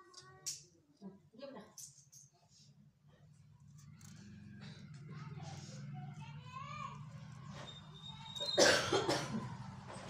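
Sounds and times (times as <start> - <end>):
person coughing: 8.6 - 9.5.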